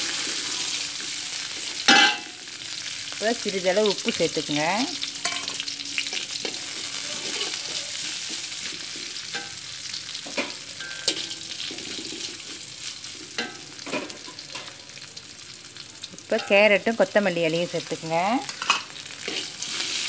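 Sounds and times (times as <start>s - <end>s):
vegetables sizzling in oil: 0.0s - 20.0s
metal spatula scraping wok: 5.2s - 9.6s, 10.2s - 14.7s, 18.5s - 20.0s.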